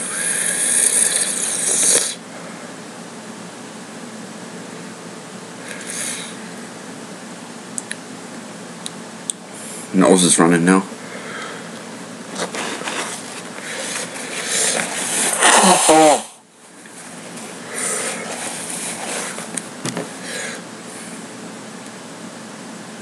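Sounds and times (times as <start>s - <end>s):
man blowing nose hard: 0.0s - 2.2s, 13.6s - 16.4s, 17.6s - 19.4s
sniffs: 5.7s - 6.4s, 12.4s - 16.1s.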